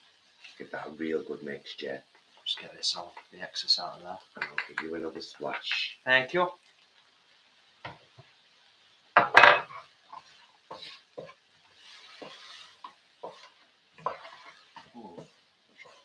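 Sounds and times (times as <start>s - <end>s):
frying pan sizzle: 0.0s - 16.0s
wooden spatula scraping pan: 9.2s - 16.0s.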